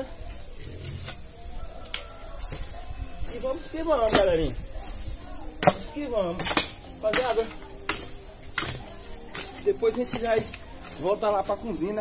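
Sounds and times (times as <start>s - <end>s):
high-pitched insect drone: 0.0s - 12.0s
hoe chopping into ground: 4.0s - 4.5s, 5.6s - 11.1s.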